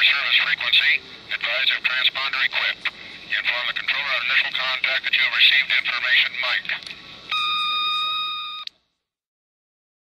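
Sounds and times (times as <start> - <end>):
steady electronic beep: 7.3 - 8.7.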